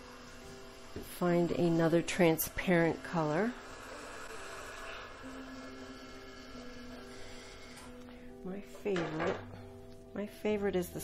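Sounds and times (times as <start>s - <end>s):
soft music of slow held notes: 0.0s - 11.0s.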